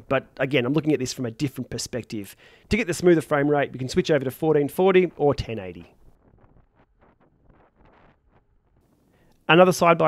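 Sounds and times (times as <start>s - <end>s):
faint wind noise on microphone: 4.5s - 9.3s.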